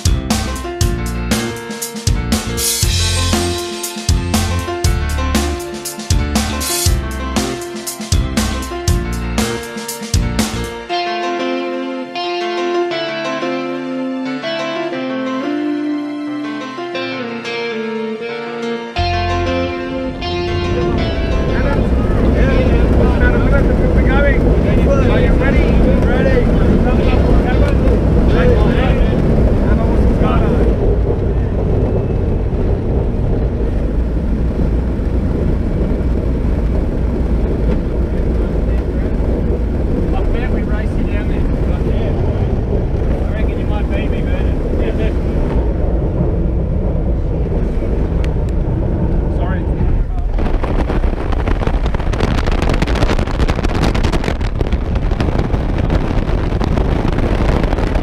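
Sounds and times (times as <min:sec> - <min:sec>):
loud rushing noise: 0:00.0 - 0:10.9, 0:19.0 - 0:58.0
aircraft engine drone from cabin: 0:26.8 - 0:50.2.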